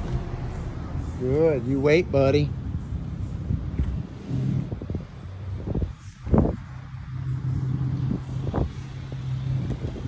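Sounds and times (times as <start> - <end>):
street traffic hum: 0.0 - 10.0
wind rumble on microphone: 0.0 - 10.0.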